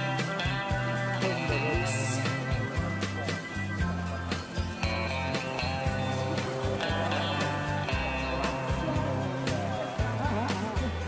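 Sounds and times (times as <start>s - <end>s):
background music with steady beat: 0.0s - 11.0s.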